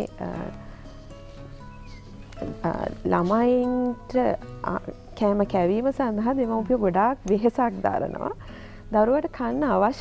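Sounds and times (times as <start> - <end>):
woman talking: 0.0 - 0.6, 2.4 - 10.0
soft background music: 0.0 - 10.0.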